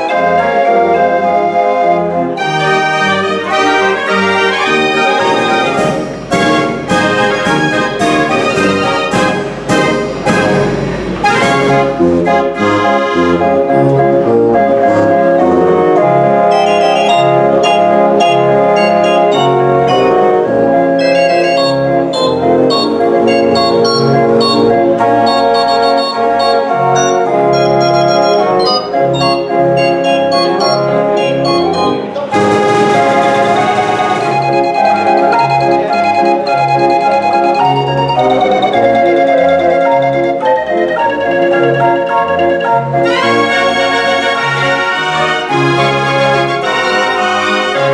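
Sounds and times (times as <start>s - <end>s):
street organ playing a tune: 0.0s - 47.9s
hissing swell: 5.1s - 12.2s.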